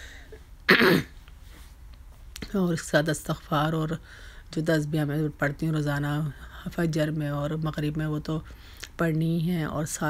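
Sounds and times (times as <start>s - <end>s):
woman clearing her throat: 0.7s - 1.2s.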